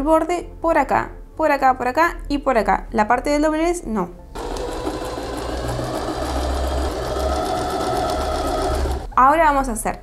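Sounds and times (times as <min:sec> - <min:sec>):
sewing machine motor whine: 0:04.4 - 0:09.1
sewing machine needle ticking: 0:04.4 - 0:09.1.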